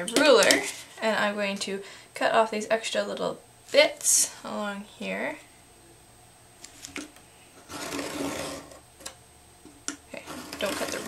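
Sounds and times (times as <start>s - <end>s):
craft knife cutting paper: 7.6s - 8.8s, 10.2s - 11.0s.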